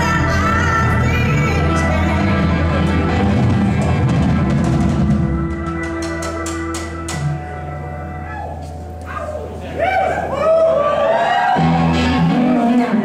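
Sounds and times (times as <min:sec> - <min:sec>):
electric guitar holding notes: 0:00.0 - 0:09.6, 0:11.6 - 0:13.0
bass guitar: 0:00.0 - 0:13.0.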